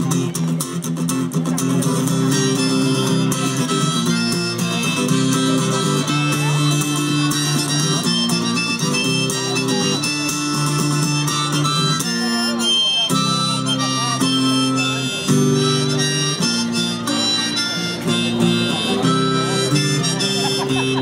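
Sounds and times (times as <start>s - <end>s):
strummed acoustic guitar: 0.0s - 21.0s
harmonica melody: 1.5s - 21.0s.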